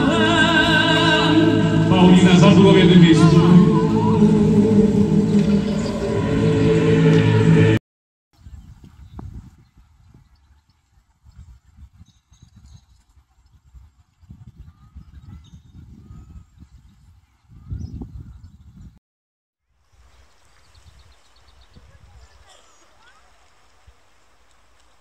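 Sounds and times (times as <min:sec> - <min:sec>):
crowd singing: 0:00.0 - 0:07.8
low outdoor rumbling: 0:00.0 - 0:07.8.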